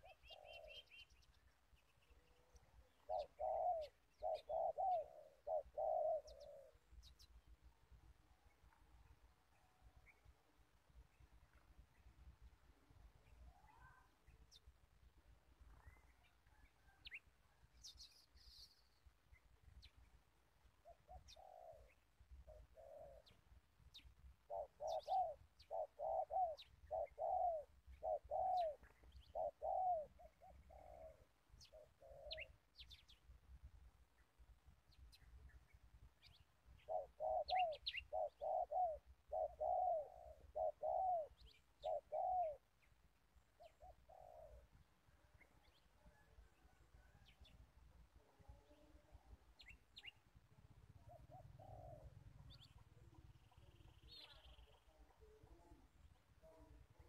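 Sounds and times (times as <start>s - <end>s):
dove cooing: 0.0s - 1.1s, 2.3s - 7.0s, 20.8s - 23.5s, 24.4s - 32.6s, 36.8s - 42.7s, 43.5s - 44.7s, 48.2s - 50.1s, 50.8s - 57.0s
small birds chirping faintly: 0.0s - 57.0s.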